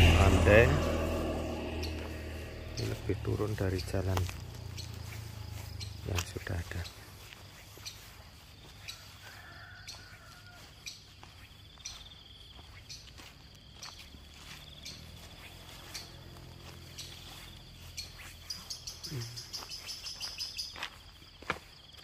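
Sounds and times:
insects trilling: 0:00.0 - 0:22.0
faint bird calls: 0:00.8 - 0:13.2, 0:13.8 - 0:21.1.

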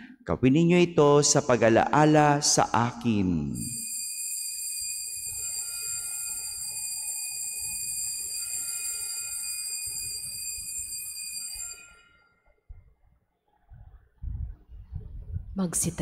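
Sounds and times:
altar bells ringing: 0:03.6 - 0:12.5.

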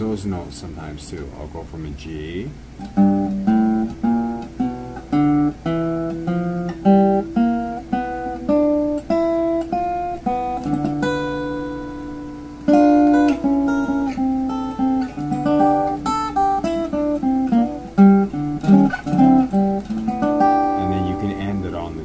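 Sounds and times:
fingerpicked blues guitar: 0:00.0 - 0:22.0.

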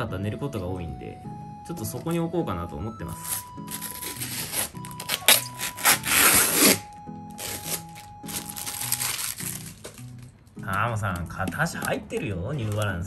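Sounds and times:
light background music: 0:00.0 - 0:13.0
plastic parts rustling: 0:07.4 - 0:12.9.

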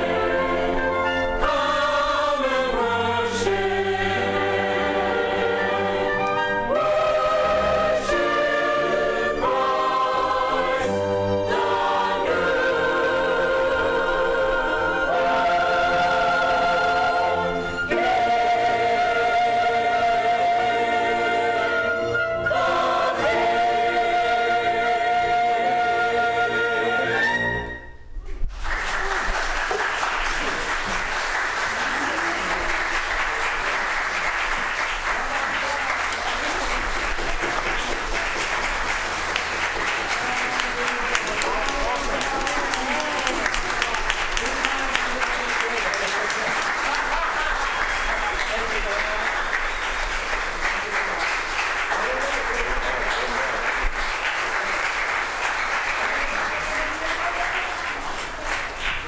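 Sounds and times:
congregation applauding: 0:28.5 - 0:59.0.

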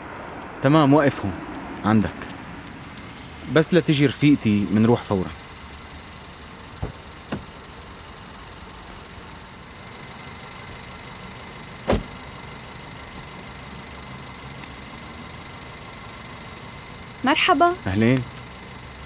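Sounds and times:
car engine idling: 0:00.0 - 0:19.0
car door shutting: 0:06.8 - 0:07.5, 0:11.8 - 0:12.2.

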